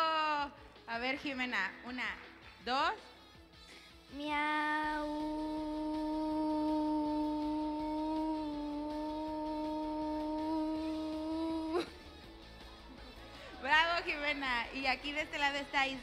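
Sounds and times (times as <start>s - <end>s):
girl imitating cat meow: 4.2s - 11.9s.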